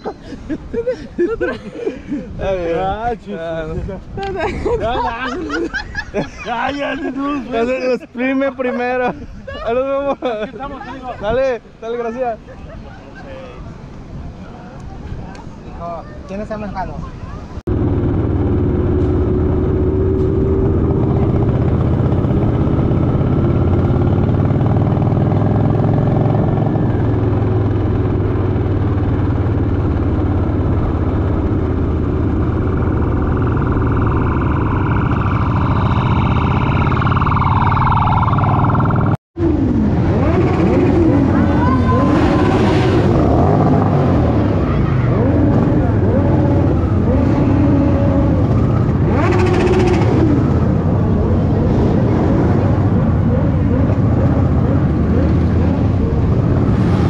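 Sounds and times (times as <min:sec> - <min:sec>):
wind rushing over microphone: 0:17.4 - 0:57.0
motorcycle engine running: 0:17.7 - 0:39.2
motorcycles revving past: 0:17.7 - 0:57.0.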